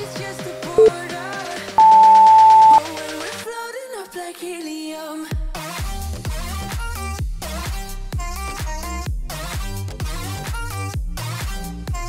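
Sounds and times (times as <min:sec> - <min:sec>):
pop song: 0:00.0 - 0:12.0
long high timer beep: 0:01.8 - 0:02.8.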